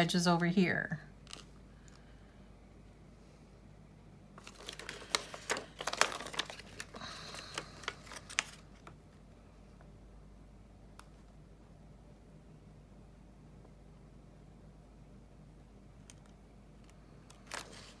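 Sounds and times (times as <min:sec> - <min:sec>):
plastic sheet crinkling: 0:01.3 - 0:01.5, 0:04.4 - 0:09.0, 0:16.8 - 0:18.0.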